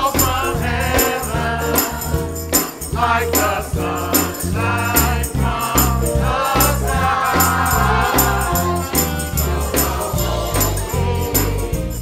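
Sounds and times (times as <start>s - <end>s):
group singing a hymn: 0.0s - 12.0s
moving bass line: 0.0s - 12.0s.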